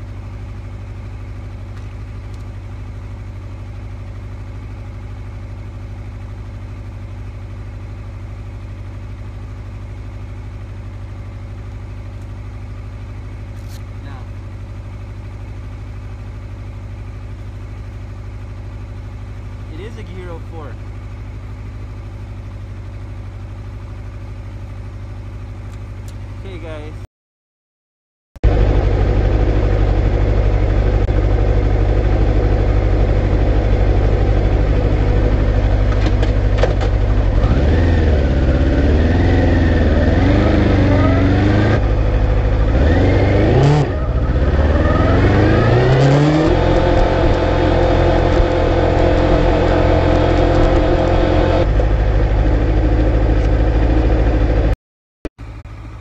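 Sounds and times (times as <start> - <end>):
motorcycle engine accelerating: 28.4 - 54.8.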